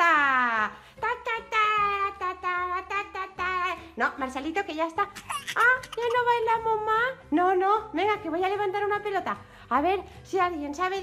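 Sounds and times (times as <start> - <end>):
childlike voice babbling: 5.2 - 6.2.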